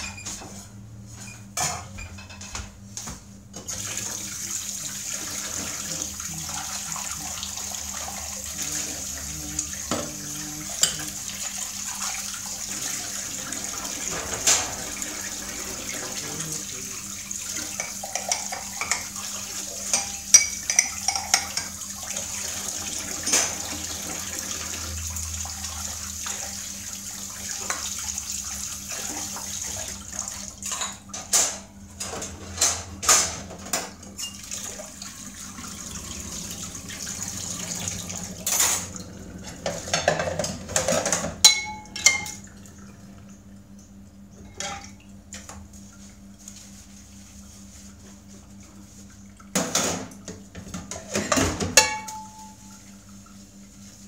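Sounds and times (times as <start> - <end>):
tap water running into sink: 3.6 - 43.5
dishes clinking: 17.7 - 19.2, 19.8 - 21.8, 38.4 - 42.4, 50.7 - 52.7.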